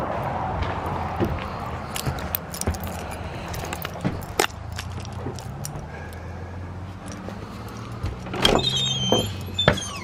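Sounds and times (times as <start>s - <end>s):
door hinges squeaking: 8.2s - 10.0s.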